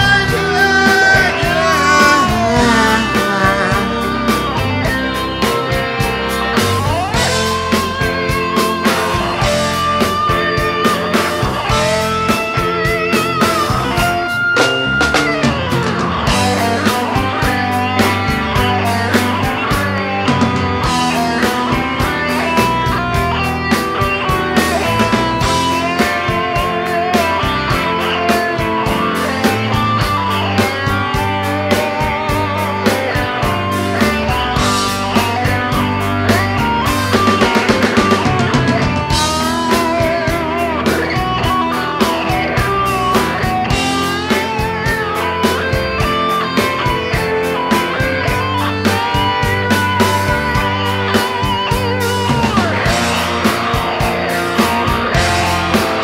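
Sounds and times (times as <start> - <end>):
drums and bass: 0.0 - 56.0
lead guitar with bent notes: 0.0 - 56.0.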